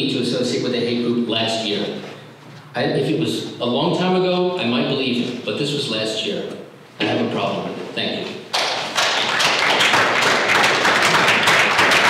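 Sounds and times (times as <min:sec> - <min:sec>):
audience applauding: 0:08.6 - 0:12.0.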